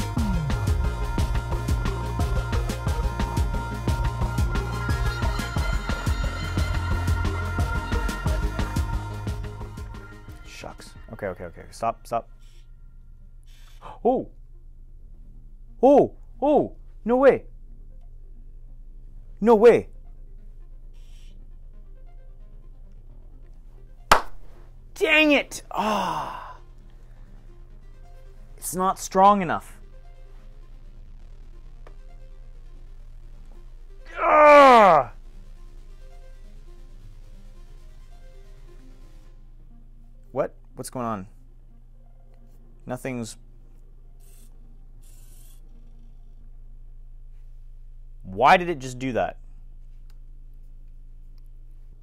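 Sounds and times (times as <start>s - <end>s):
low steady hum: 0.0s - 52.0s
sharp smack: 24.1s - 24.4s.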